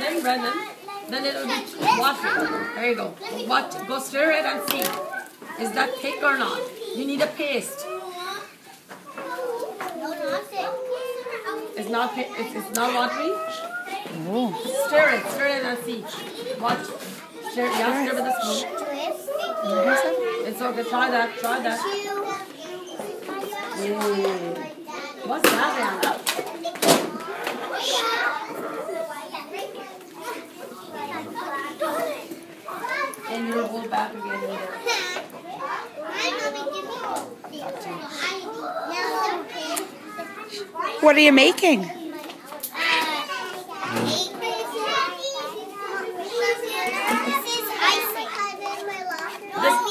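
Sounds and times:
young children talking: 0.0 - 49.9.

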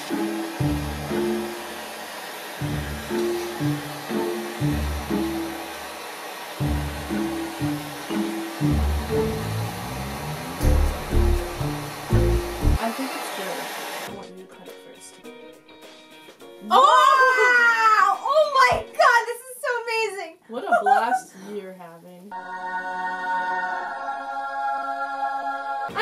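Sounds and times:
background music: 0.0 - 2.0, 2.6 - 6.0, 6.6 - 12.9, 14.1 - 20.0, 22.3 - 26.0
hand torch hissing: 0.2 - 12.8.

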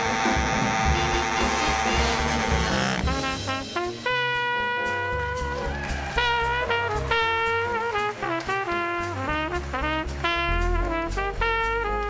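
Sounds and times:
baritone saxophone: 0.0 - 12.0
drums: 0.0 - 12.0
low pulsing bass notes: 0.0 - 12.0.

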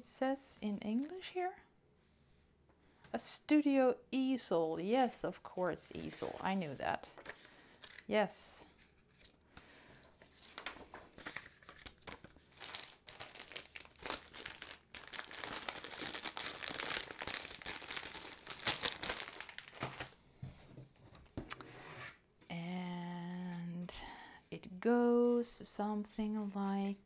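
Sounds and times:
plastic bag and paper crinkling: 5.9 - 9.4, 10.1 - 20.2.

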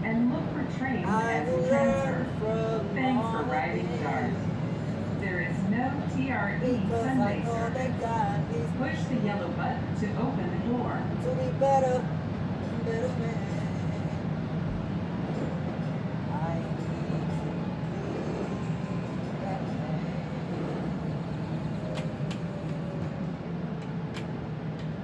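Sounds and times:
faint voices: 0.0 - 12.0, 12.7 - 24.1
train running rumble: 0.0 - 25.0.

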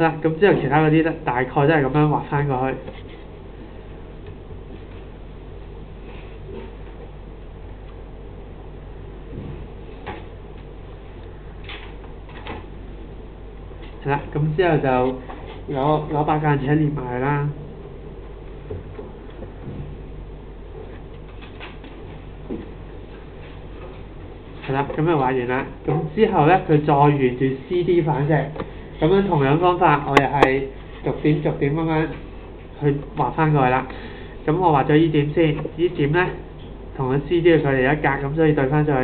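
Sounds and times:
low room hum and hiss: 0.0 - 39.0.

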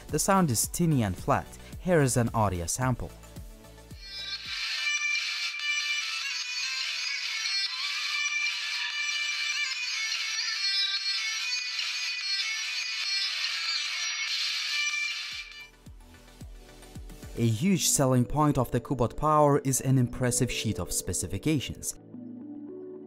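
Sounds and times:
tinny music from phone speaker: 4.0 - 15.8.

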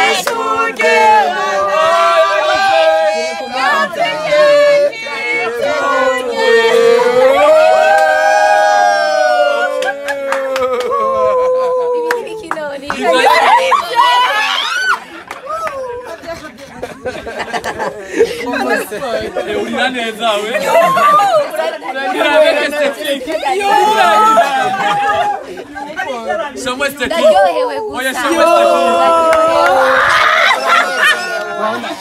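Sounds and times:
voices singing together: 0.0 - 9.9
young people chattering: 3.2 - 7.2, 11.8 - 14.4, 15.0 - 32.0.

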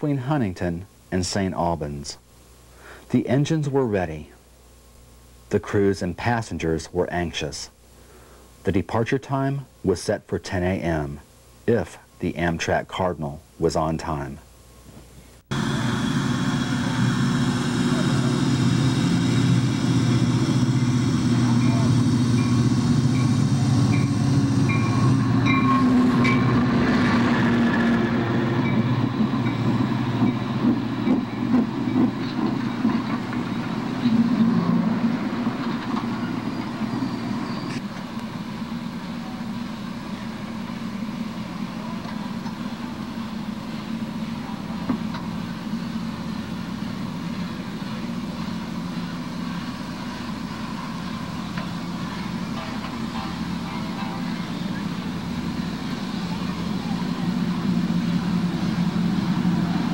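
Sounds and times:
diesel locomotive engine running: 15.4 - 59.9
passenger cars rumbling past: 15.5 - 37.8, 43.9 - 59.9
train wheels clacking: 16.8 - 37.8, 44.6 - 59.9.

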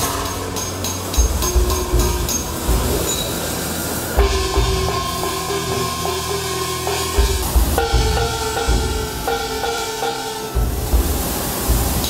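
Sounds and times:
brass gong ringing: 0.0 - 12.0.

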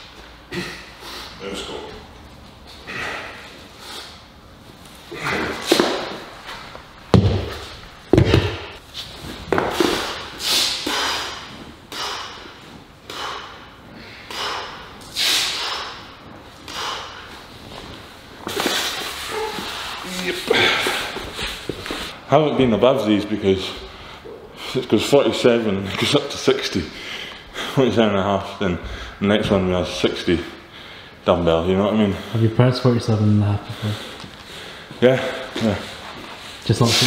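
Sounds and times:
person exhaling hard: 9.8 - 16.1, 18.6 - 21.2.

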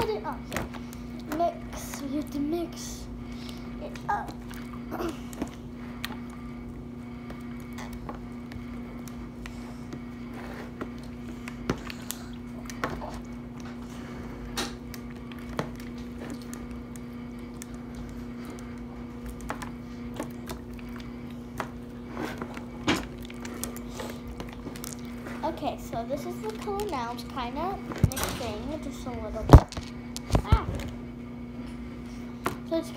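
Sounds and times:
steady low hum: 0.0 - 32.9.

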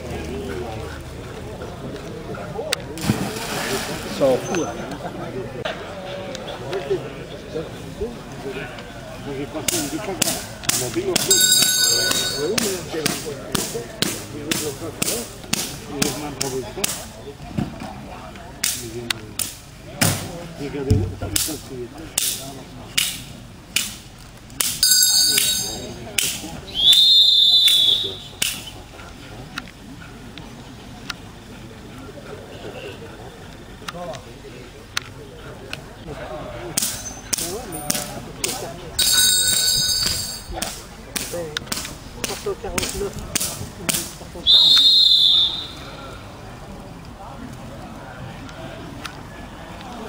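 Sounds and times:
whistle blowing: 26.7 - 28.3, 44.4 - 45.9
stick striking sharp cracks: 40.6 - 44.1.

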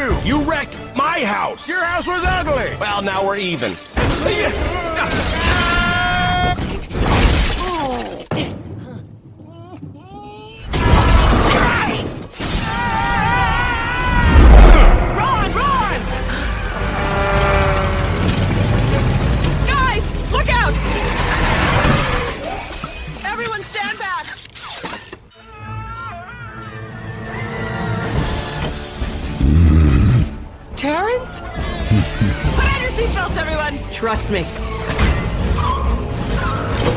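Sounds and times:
film score music: 0.0 - 7.1, 8.5 - 36.9
debris crashing through wooden wall: 17.8 - 22.4.

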